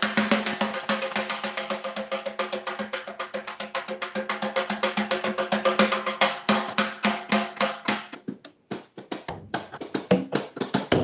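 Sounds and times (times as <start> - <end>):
drum played with sticks: 0.0 - 11.0.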